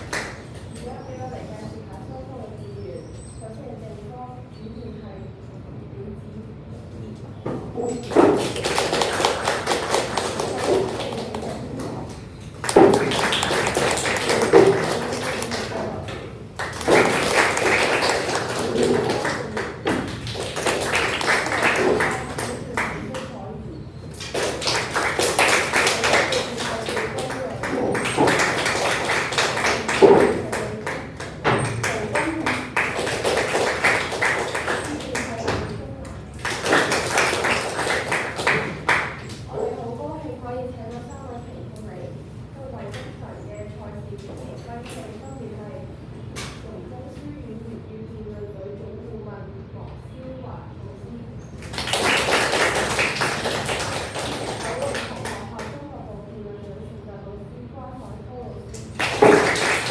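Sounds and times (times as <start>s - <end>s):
group clapping: 0.0s - 0.8s, 7.9s - 23.4s, 24.1s - 39.6s, 51.6s - 55.8s, 58.7s - 59.9s
voices: 0.0s - 59.9s.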